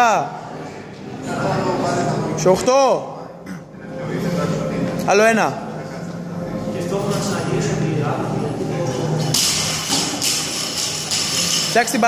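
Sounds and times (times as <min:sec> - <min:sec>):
metal plates rattling: 0:09.2 - 0:12.0.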